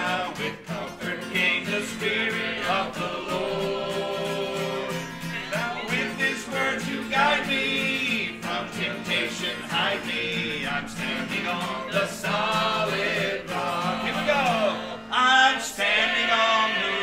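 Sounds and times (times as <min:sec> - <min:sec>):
acoustic guitar: 0:00.0 - 0:17.0
choir singing gospel song: 0:00.0 - 0:17.0.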